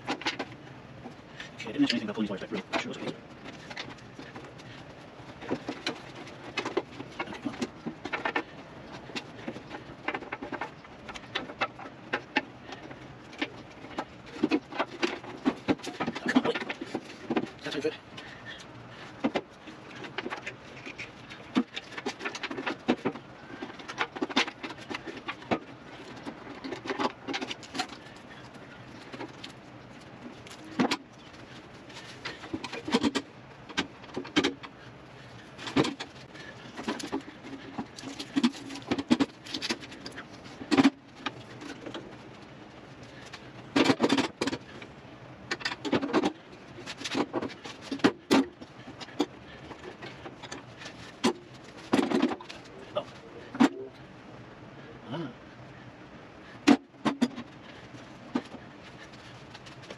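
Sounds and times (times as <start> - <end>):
knocks and scraping on metal: 1.8 - 53.8.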